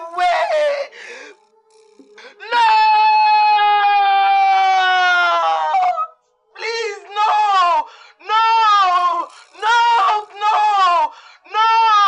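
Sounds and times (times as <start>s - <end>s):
woman screaming: 0.0s - 0.9s, 2.4s - 12.0s.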